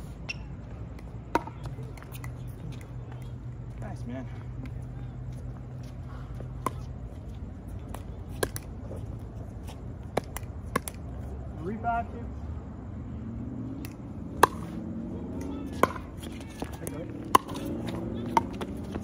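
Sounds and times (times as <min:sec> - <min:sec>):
low steady hum: 0:00.0 - 0:19.0
pickleball paddle hits: 0:01.4 - 0:02.3, 0:07.9 - 0:08.7, 0:10.1 - 0:11.0, 0:13.8 - 0:14.7, 0:15.8 - 0:16.1, 0:16.8 - 0:17.6.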